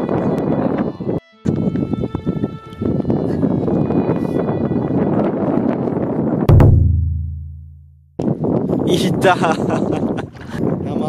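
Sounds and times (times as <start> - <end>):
wind buffeting microphone: 0.0 - 6.5, 8.2 - 11.0.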